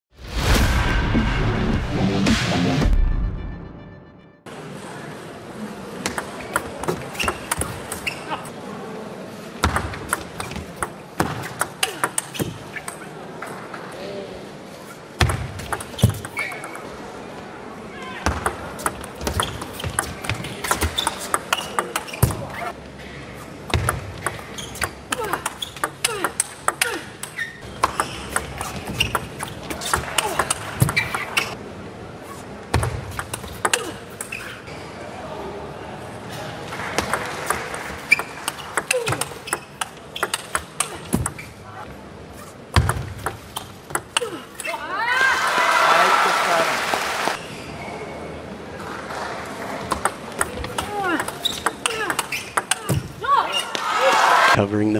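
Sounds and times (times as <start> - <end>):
crowd voices: 16.2 - 42.7, 43.8 - 54.9.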